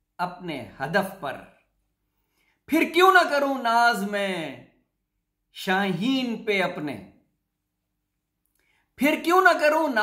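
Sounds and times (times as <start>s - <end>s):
person speaking: 0.0s - 1.8s, 2.5s - 7.3s, 8.5s - 10.0s
faint breath: 2.1s - 2.6s, 8.6s - 8.9s.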